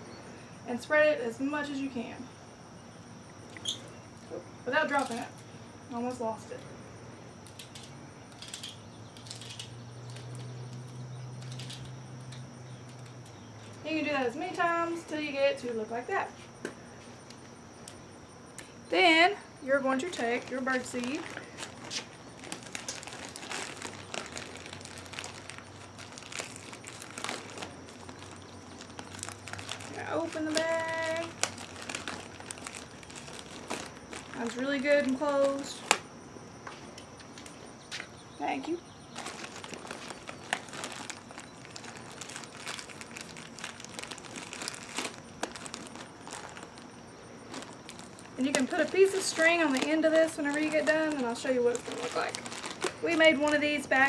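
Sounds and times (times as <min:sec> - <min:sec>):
plastic bag crinkling: 0:07.4 - 0:14.8, 0:19.7 - 0:36.0, 0:39.0 - 0:54.0.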